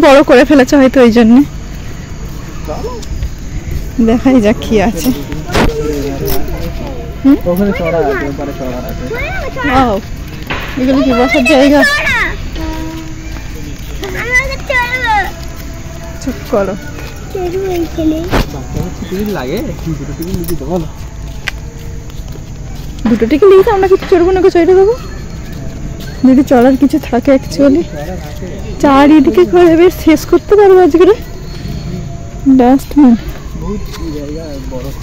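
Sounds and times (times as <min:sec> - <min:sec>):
people talking: 0:00.0 - 0:01.5, 0:03.9 - 0:15.6, 0:16.2 - 0:21.0, 0:23.0 - 0:25.6, 0:26.2 - 0:31.3, 0:32.4 - 0:35.0.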